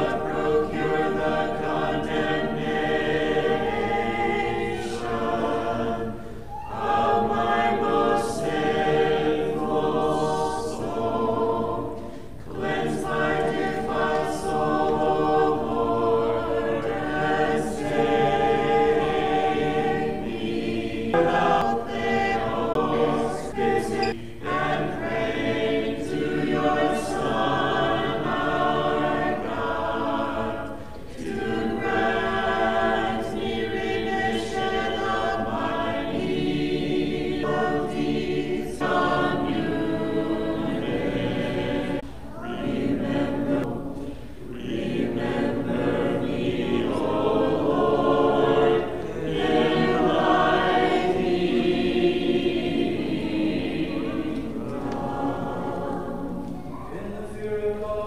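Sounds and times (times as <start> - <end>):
choir singing chant: 0.0 - 58.0.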